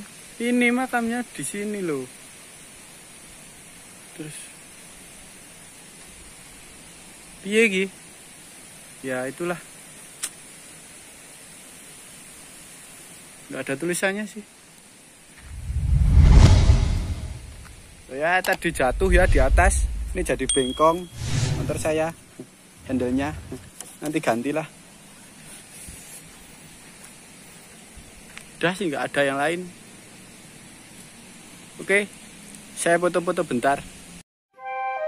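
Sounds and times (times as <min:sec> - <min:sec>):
faint outdoor hiss: 0:00.0 - 0:35.0.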